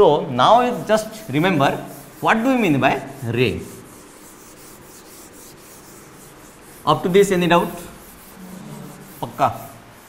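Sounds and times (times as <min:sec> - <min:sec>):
duster scrubbing chalkboard: 0:00.6 - 0:10.0.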